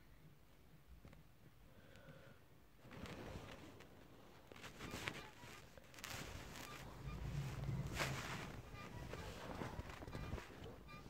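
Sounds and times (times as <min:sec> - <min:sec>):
blanket rustling: 0:02.8 - 0:11.0.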